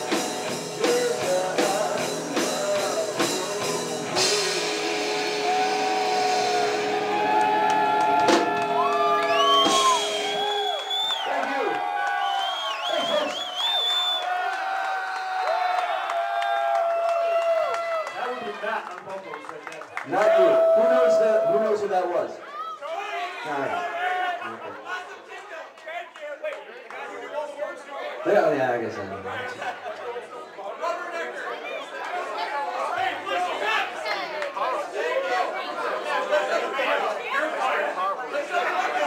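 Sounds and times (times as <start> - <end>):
live rock band playing: 0.0 - 10.9
audience whooping and whistling: 5.4 - 18.1, 20.1 - 21.8.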